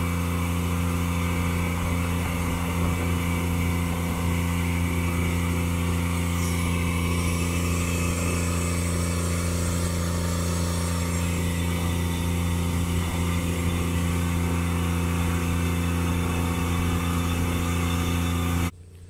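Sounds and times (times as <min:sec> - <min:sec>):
rush of air and grain: 0:00.0 - 0:18.7
grain vacuum machine drone: 0:00.0 - 0:19.0.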